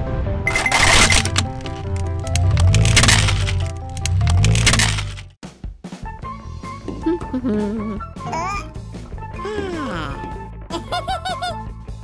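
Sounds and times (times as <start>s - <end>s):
background music: 0.0s - 12.0s
plastic toy cracking under tyre: 0.7s - 5.3s.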